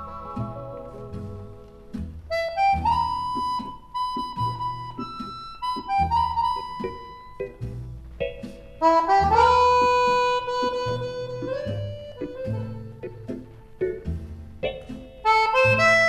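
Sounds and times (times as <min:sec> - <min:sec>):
accordion melody: 0:00.0 - 0:16.0
steady bass line: 0:00.0 - 0:16.0.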